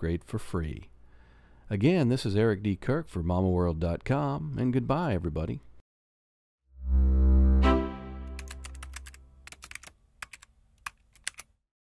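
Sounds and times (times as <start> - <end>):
held musical chord: 6.8 - 8.7
keyboard typing clicks: 8.2 - 11.5.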